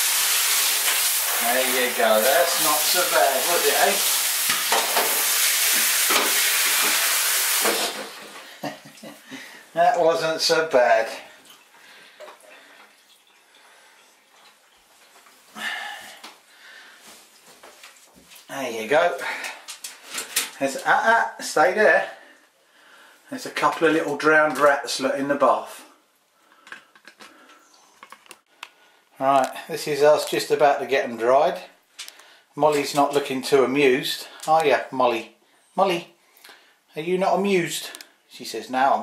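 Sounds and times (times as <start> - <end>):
water dripping in bathtub: 11.3 - 15.4.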